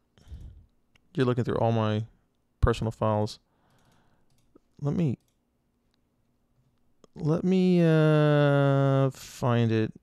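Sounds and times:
computer mouse clicks: 3.7s - 6.0s.

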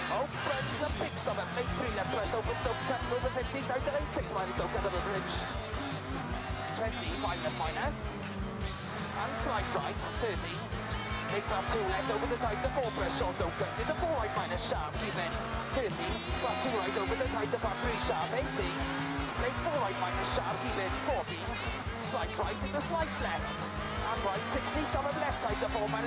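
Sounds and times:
vocals: 0.0s - 26.0s.

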